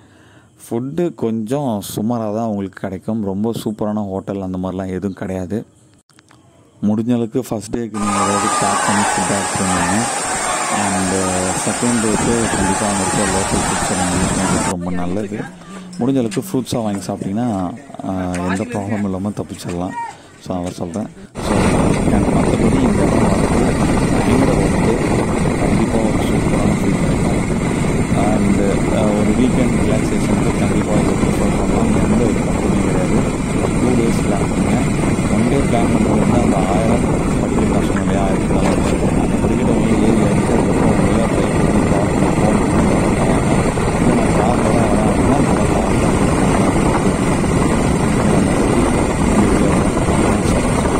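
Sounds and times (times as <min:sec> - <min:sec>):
wind rush on microphone: 0:08.0 - 0:16.1, 0:21.3 - 0:50.9.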